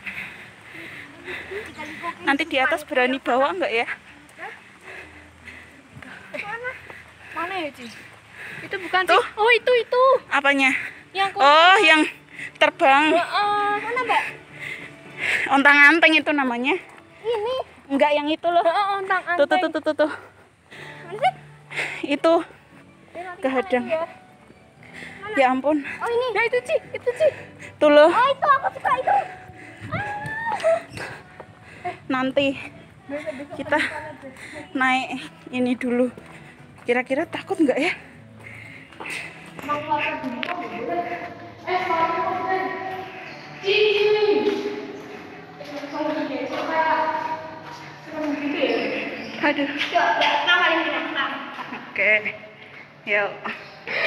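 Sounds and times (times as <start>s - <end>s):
close conversation: 0.0s - 54.0s
people talking: 48.1s - 52.3s.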